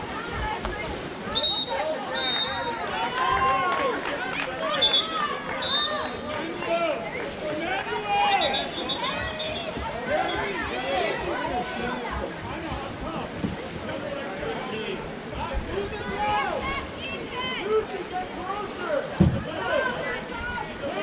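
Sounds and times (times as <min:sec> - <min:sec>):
whistle blasts: 0:01.3 - 0:02.8, 0:04.7 - 0:06.2, 0:08.4 - 0:09.7
crowd shouting: 0:07.6 - 0:12.0.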